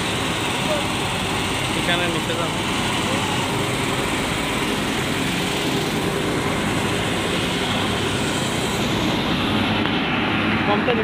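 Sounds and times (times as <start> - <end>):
ventilation blower: 0.0 - 11.0.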